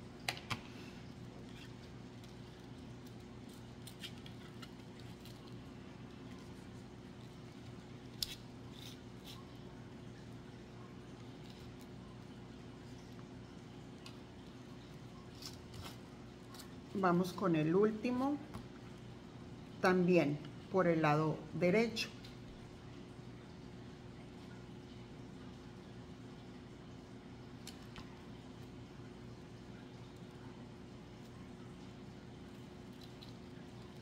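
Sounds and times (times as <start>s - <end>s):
steady low hum: 0.0s - 34.0s
clicks and rustles of handling foam: 1.3s - 9.6s.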